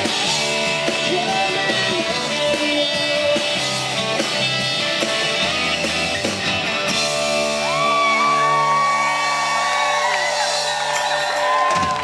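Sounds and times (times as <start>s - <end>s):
audience whooping and cheering: 7.4s - 12.0s.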